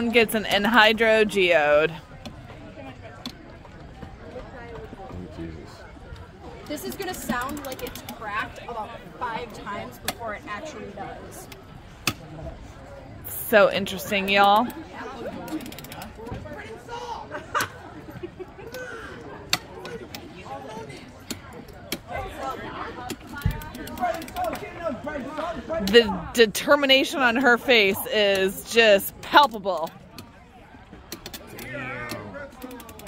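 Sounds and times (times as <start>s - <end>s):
background crowd chatter: 0.0s - 33.0s.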